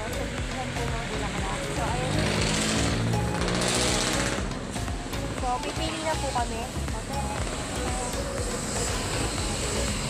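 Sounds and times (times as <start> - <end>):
background music with singing: 0.0 - 10.0
vehicle engine humming: 0.0 - 10.0.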